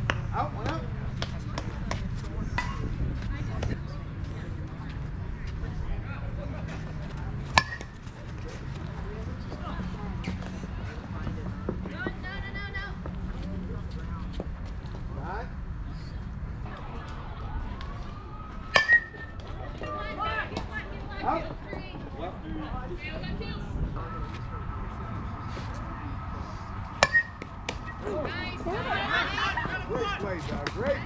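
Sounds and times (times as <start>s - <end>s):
players shouting and chatting: 0.0s - 31.0s
bat hitting ball: 7.5s - 8.0s, 18.7s - 19.4s, 27.0s - 27.9s.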